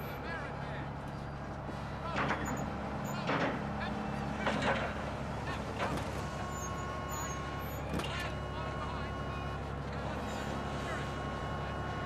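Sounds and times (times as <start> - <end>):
ferry engine rumbling: 0.0 - 12.0.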